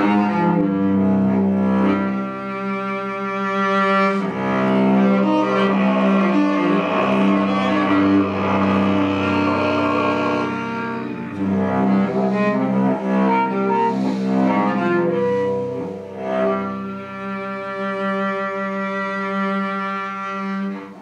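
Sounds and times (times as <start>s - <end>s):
bowed cello: 0.0s - 21.0s.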